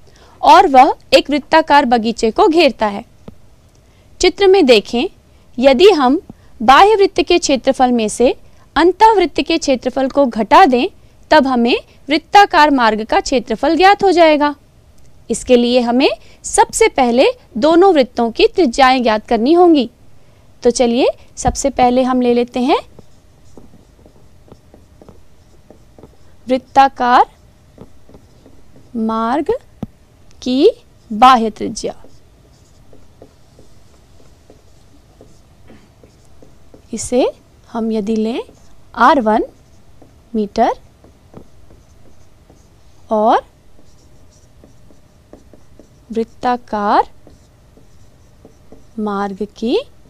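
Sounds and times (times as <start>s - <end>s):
pen scratching while writing: 22.9s - 29.1s, 31.8s - 36.9s, 38.1s - 43.1s, 43.7s - 49.6s.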